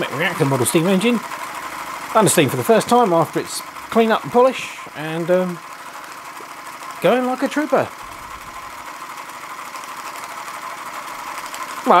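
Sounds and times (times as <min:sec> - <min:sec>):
toy steam engine running: 0:00.0 - 0:12.0.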